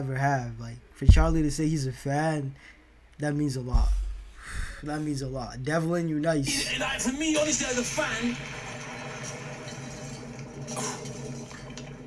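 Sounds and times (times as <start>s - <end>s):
low steady hum: 0.0s - 7.3s.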